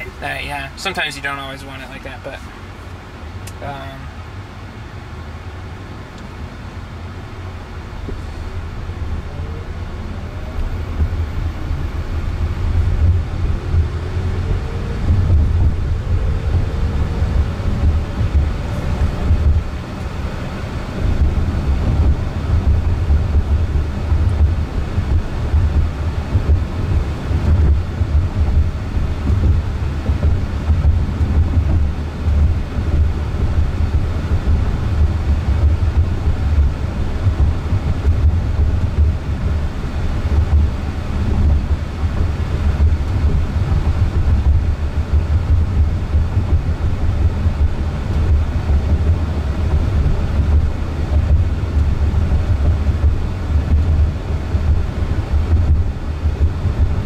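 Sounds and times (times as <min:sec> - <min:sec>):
low rumble of tyres and road: 0:00.0 - 0:57.0
faint rising whine: 0:05.7 - 0:57.0.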